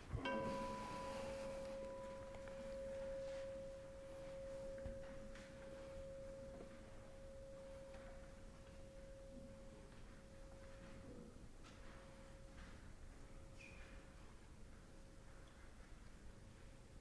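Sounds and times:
singing bowl ringing: 0.0 - 11.1.

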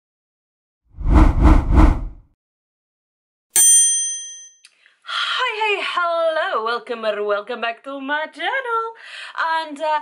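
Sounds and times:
bright bell ding: 3.6 - 4.6.

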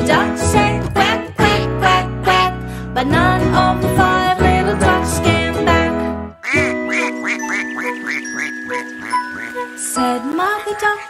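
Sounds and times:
children's song music: 0.0 - 11.0
cartoon duck quacks: 6.4 - 9.6.

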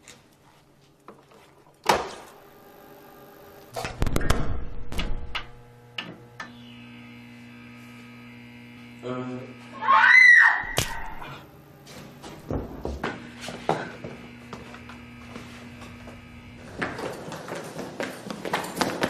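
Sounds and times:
electrical mains hum: 0.0 - 19.0
loud electrical crackle: 2.0 - 6.0
person screaming: 9.8 - 11.4
sharp crack: 10.7 - 11.1.

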